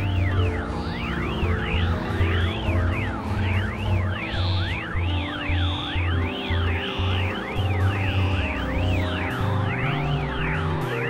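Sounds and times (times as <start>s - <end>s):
gliding synthesized tones: 0.0s - 11.0s
held drone tones: 0.0s - 11.0s.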